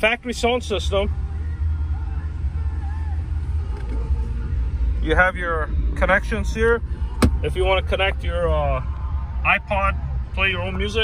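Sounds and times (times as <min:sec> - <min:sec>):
low rumble of car engine: 0:00.0 - 0:11.0.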